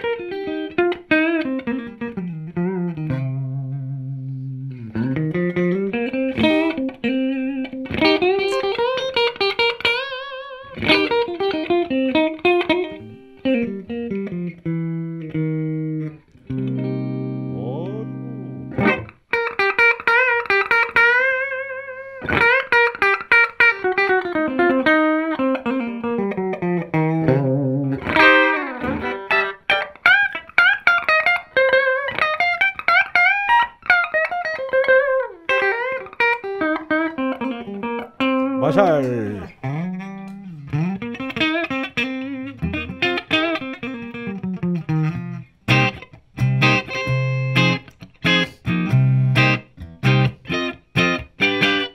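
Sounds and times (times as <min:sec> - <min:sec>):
clean electric guitar lead: 0:00.0 - 0:51.9.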